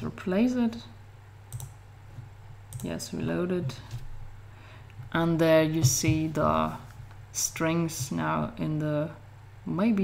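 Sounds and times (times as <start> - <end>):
computer fan hum: 0.0 - 10.0
computer mouse clicks: 1.5 - 1.8.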